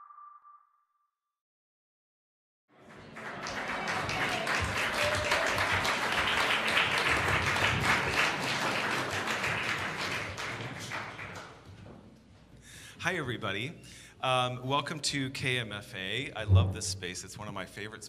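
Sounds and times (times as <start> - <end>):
audience applauding: 2.8 - 11.8.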